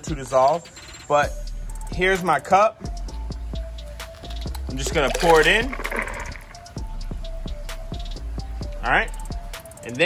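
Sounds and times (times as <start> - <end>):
music with steady beat: 0.0 - 10.0
salt splashing into water: 4.7 - 6.6.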